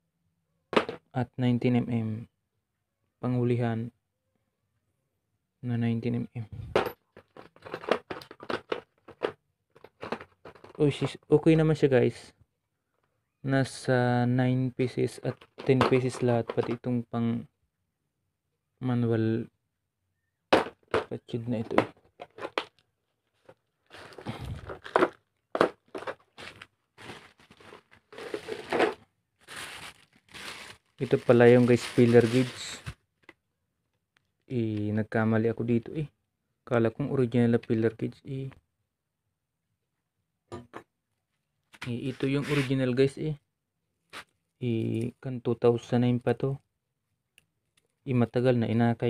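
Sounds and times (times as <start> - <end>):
plastic packaging crinkling: 22.6 - 33.3.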